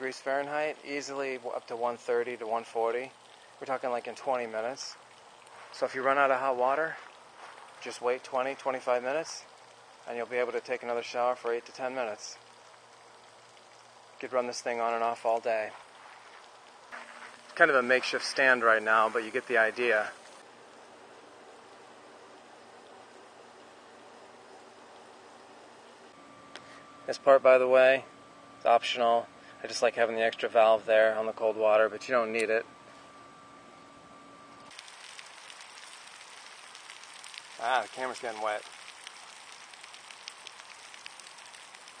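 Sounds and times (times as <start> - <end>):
water spraying onto gravel: 0.0 - 20.5, 34.7 - 42.0
shower head spraying water: 34.7 - 42.0.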